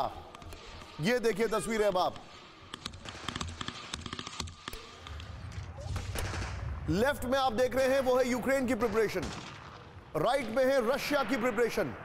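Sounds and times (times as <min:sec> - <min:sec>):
gunfire cracks: 0:05.8 - 0:07.4, 0:08.7 - 0:10.2.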